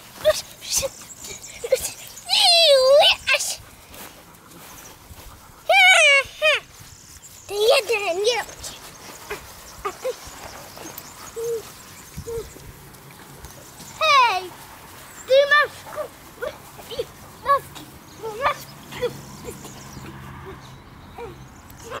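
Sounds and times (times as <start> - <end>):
puppies whining: 4.5 - 14.4.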